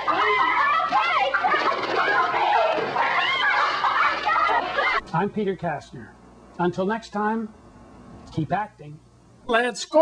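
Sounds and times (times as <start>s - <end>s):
chickens clucking and squawking: 0.0s - 5.0s.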